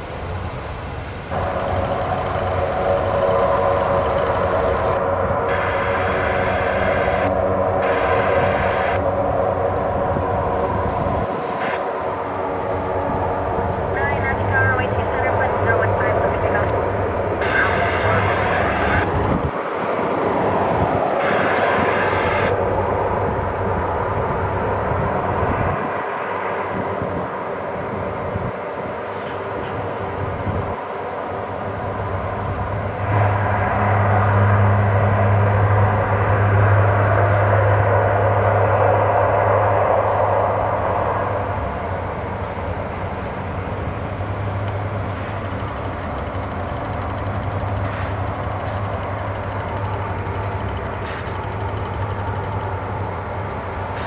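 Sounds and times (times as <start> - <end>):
turboprop engines droning: 0.0 - 54.0.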